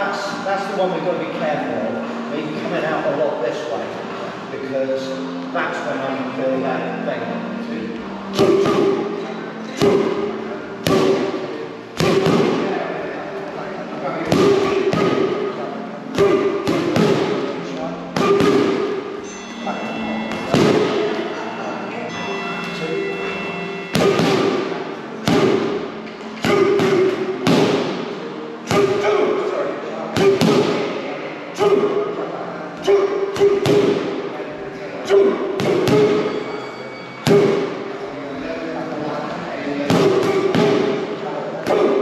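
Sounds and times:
boxing gloves smacking pads: 12.0 - 12.7, 14.3 - 15.4, 16.2 - 17.4, 18.2 - 18.9, 25.2 - 25.8, 26.4 - 28.0.

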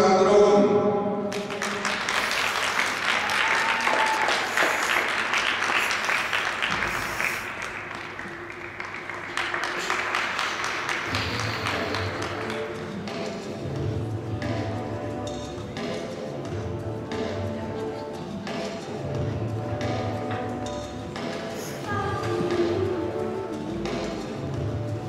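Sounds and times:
audience applauding: 1.3 - 13.3.

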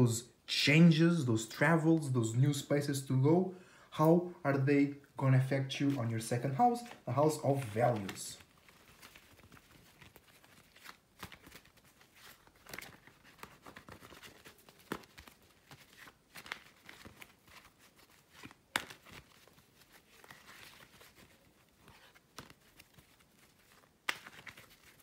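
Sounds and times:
cards being shuffled: 5.8 - 25.0.

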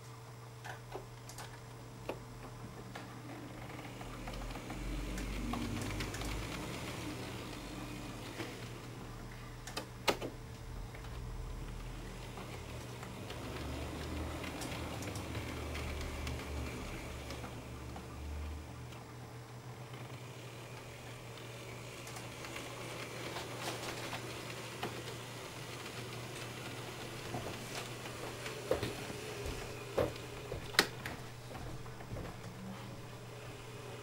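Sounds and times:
model locomotive hum: 2.1 - 9.8, 10.6 - 34.0.

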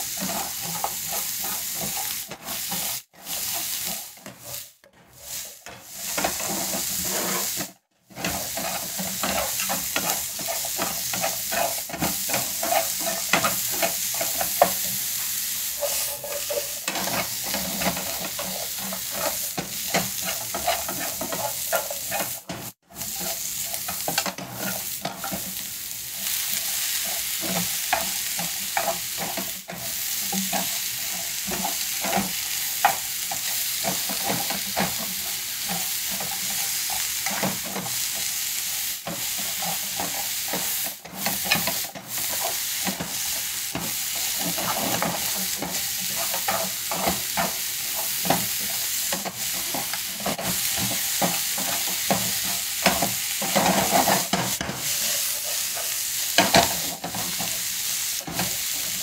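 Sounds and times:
vegetables sizzling in a pan: 0.0 - 59.0
chopsticks scraping and tapping pan: 0.1 - 25.6, 26.2 - 38.3, 39.0 - 57.6.

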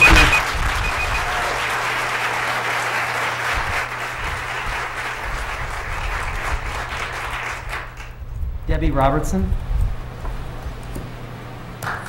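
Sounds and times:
audience applause: 0.0 - 8.2.

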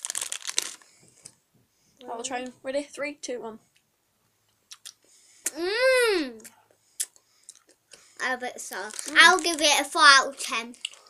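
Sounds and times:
plastic bag crinkling: 0.0 - 1.0, 8.6 - 11.0.

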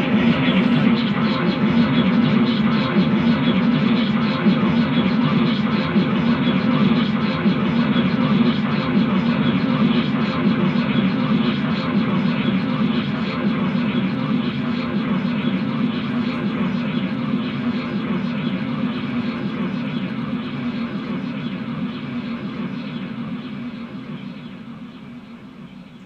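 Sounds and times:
harsh distorted noise music: 0.0 - 22.1
low drone: 0.0 - 26.0.

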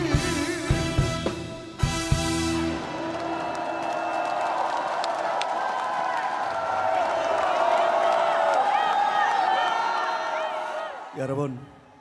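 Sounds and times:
audience cheering and clapping: 2.5 - 11.4.

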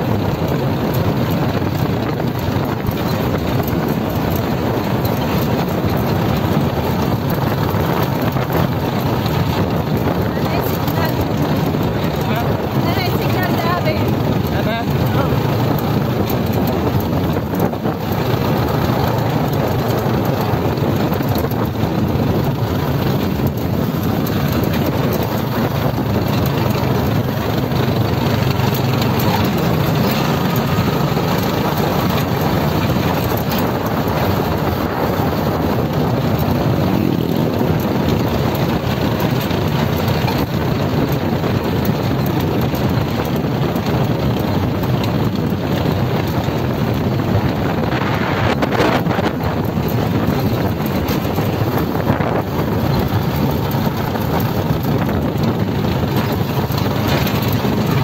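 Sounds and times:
motorcycle engine running: 0.0 - 58.0
road and wind noise: 0.0 - 58.0.

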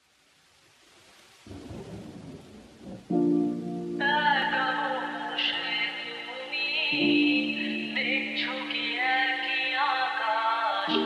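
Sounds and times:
rain falling: 0.0 - 11.0
low roll of thunder: 1.4 - 4.2.

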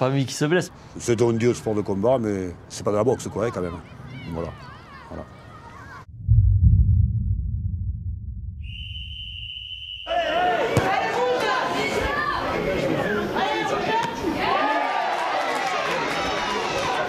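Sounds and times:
loud low rumble: 6.1 - 8.7
many voices shouting: 14.4 - 17.0.

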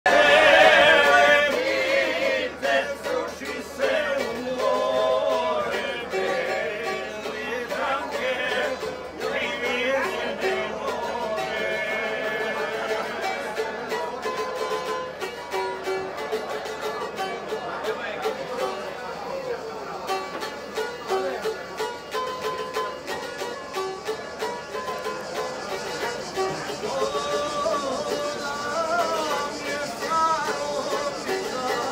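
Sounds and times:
people's voices: 0.0 - 31.9
plucked string instrument tune: 0.1 - 31.9.

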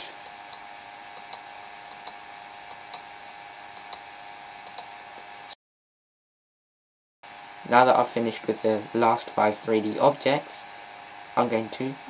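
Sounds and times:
faint hiss and hum: 7.3 - 12.0.

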